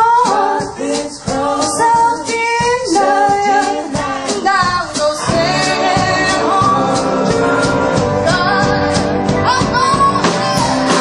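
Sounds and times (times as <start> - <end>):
drums: 0.0 - 11.0
woman singing lead: 0.0 - 11.0.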